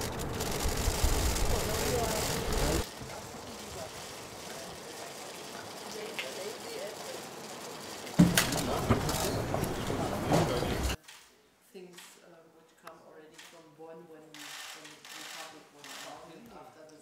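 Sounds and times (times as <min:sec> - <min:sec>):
faint voices talking: 0:01.5 - 0:11.0.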